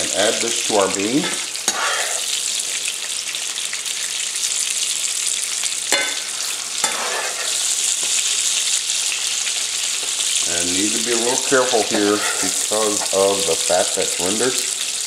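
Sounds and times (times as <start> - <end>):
sausage sizzling in a frying pan: 0.0 - 15.0.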